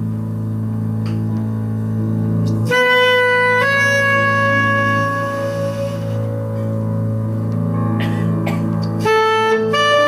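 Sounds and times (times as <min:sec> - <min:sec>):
bowed double bass drone: 0:00.0 - 0:10.0.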